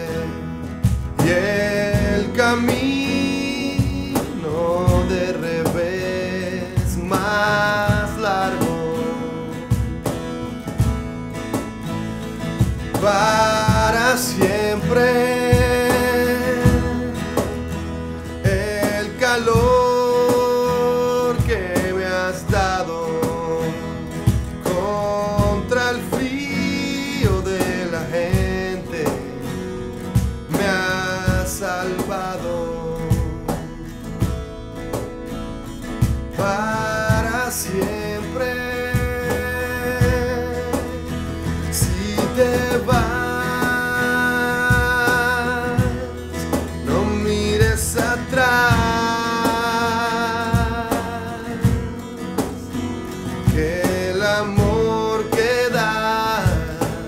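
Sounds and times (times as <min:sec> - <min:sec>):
acoustic band playing live: 0:00.0 - 0:57.0
cajon beat: 0:00.0 - 0:57.0
man singing: 0:00.0 - 0:57.0.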